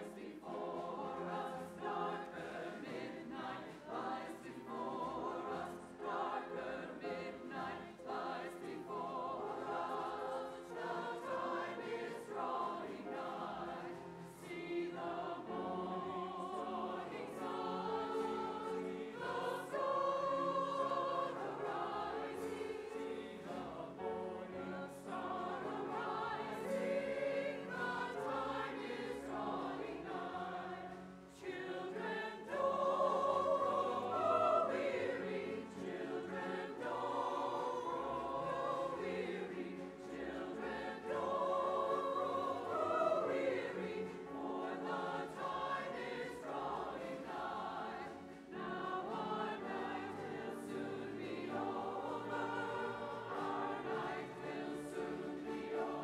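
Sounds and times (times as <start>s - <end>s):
church choir singing: 0.0s - 56.0s
string ensemble: 0.0s - 56.0s.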